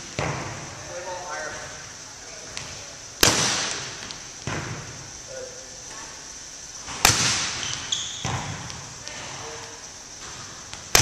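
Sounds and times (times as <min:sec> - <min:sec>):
volleyball struck hard: 0:02.6 - 0:04.9, 0:06.9 - 0:08.9, 0:10.3 - 0:11.0.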